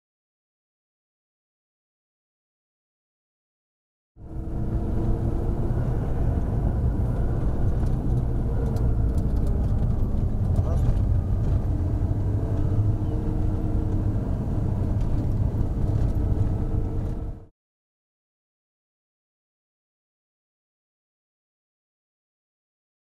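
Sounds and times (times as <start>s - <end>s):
car engine running: 4.2s - 17.5s
tyre and road rumble: 4.2s - 17.5s.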